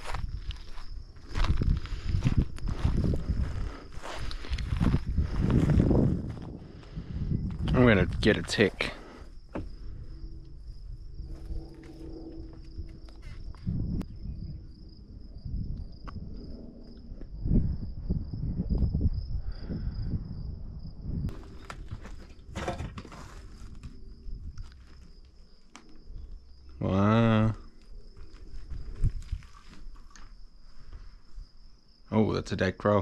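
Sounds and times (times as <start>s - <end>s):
footsteps on dry ground: 0.0s - 8.9s, 21.3s - 25.3s, 27.8s - 31.2s
high-pitched insect buzz: 9.1s - 19.9s.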